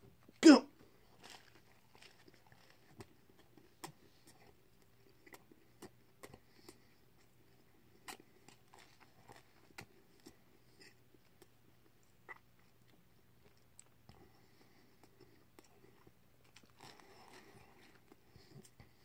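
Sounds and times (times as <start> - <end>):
person chewing food: 0.2 - 19.0.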